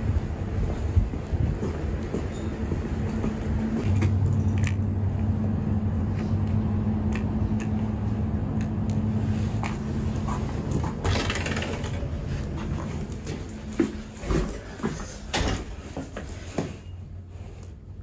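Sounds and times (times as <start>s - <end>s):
low mechanical hum: 0.0s - 18.0s
glass door opening: 10.9s - 12.1s.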